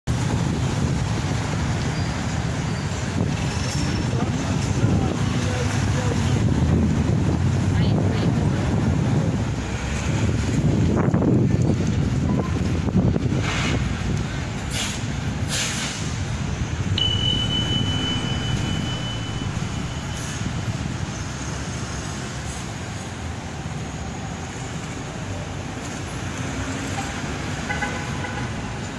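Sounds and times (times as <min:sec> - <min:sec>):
low traffic rumble: 0:00.1 - 0:28.9
people's voices: 0:04.0 - 0:06.8, 0:07.5 - 0:08.9
short hisses: 0:14.7 - 0:16.2
high steady tone: 0:16.8 - 0:21.8.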